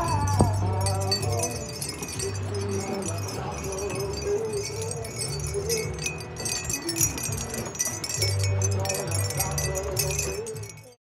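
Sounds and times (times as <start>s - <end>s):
wind chimes tinkling: 0.0s - 11.0s.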